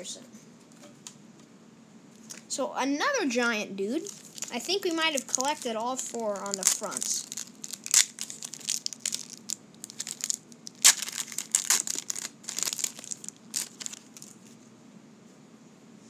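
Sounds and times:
plastic wrapper crinkling: 2.2 - 2.5, 4.0 - 14.6.

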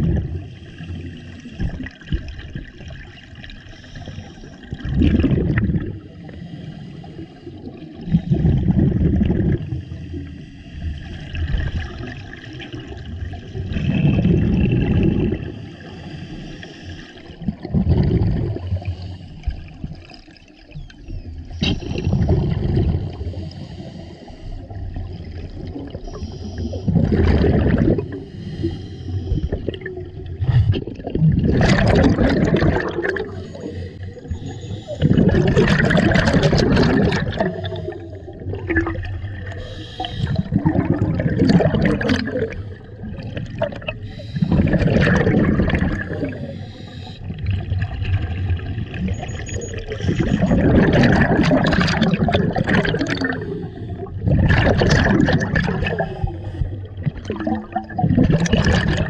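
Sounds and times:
exhaled bubbles bursting: 0.0 - 3.7, 4.5 - 6.2, 7.6 - 9.9, 11.1 - 15.7, 17.2 - 23.5, 24.6 - 28.4, 29.1 - 59.0
diver breathing through regulator: 6.2 - 8.8, 15.4 - 17.4, 18.5 - 19.8, 21.6 - 25.0, 26.0 - 29.8, 32.0 - 35.6, 36.8 - 38.7, 39.4 - 47.5, 52.8 - 54.3, 55.8 - 57.2.

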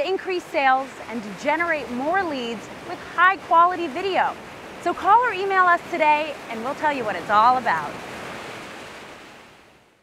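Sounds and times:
ocean surf washing: 0.0 - 9.9.

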